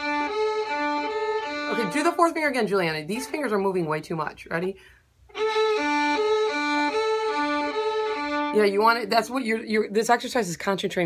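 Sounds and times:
violin and viola bowing in unison: 0.0 - 2.2, 5.3 - 8.6.

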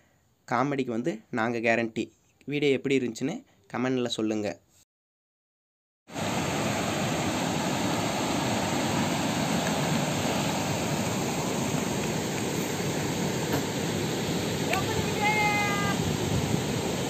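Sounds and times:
river water rushing over rocks: 6.2 - 17.0.

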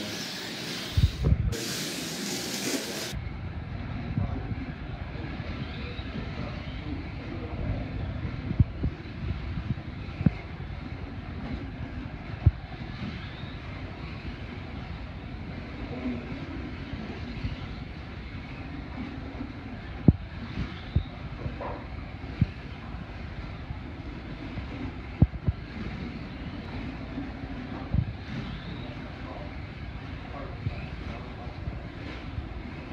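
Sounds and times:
slot car motors whirring: 0.0 - 3.2.

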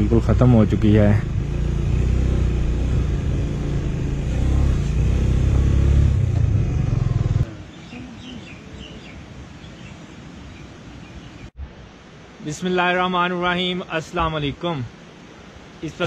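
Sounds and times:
motorcycle engine running: 0.0 - 7.5.

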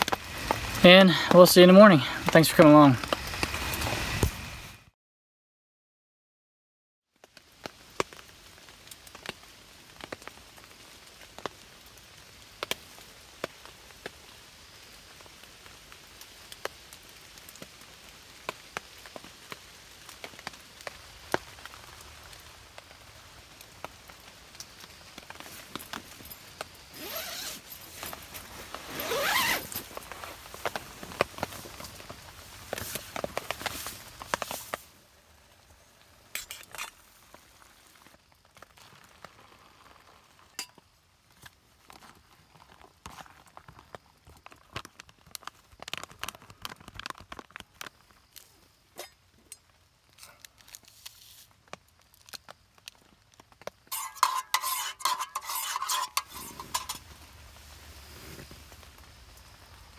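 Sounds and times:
faint steady hiss: 0.0 - 4.9, 7.2 - 59.9
tent zipping and rustling: 2.6 - 4.9, 25.3 - 34.9, 50.1 - 51.5, 53.9 - 59.0.

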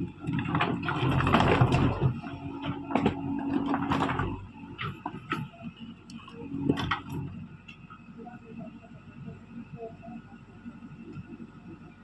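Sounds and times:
digger diesel engine running: 0.0 - 12.0.

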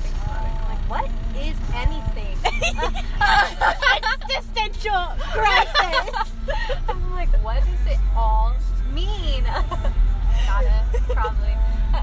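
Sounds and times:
women talking: 0.0 - 9.8, 10.4 - 11.6
steady low rumble: 0.0 - 12.0.

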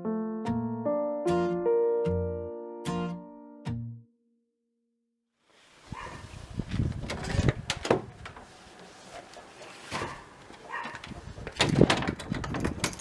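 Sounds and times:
background music: 0.0 - 4.1.

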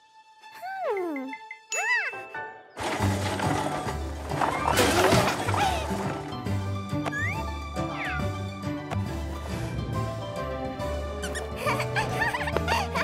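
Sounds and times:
background music with bass: 6.2 - 12.6.

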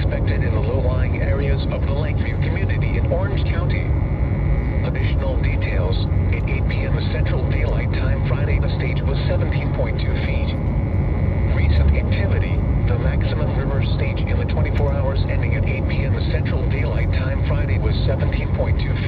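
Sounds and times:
steady low rumble: 0.0 - 19.0
synthesized voice over radio: 0.0 - 19.0.

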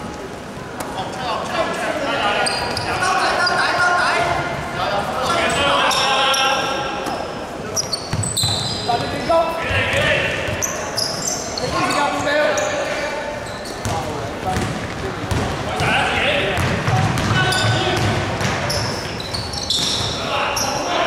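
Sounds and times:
sneakers squeaking on floor: 2.3 - 4.5, 5.2 - 21.0
basketball bouncing on court: 8.1 - 9.2, 13.8 - 20.2
players shouting: 15.7 - 21.0.

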